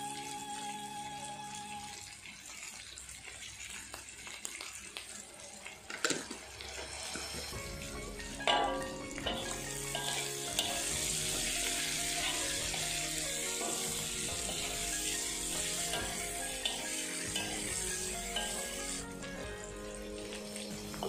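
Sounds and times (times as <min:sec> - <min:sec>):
vegetables sizzling in wok: 0:03.6 - 0:21.0
spatula scraping pan: 0:08.4 - 0:19.1.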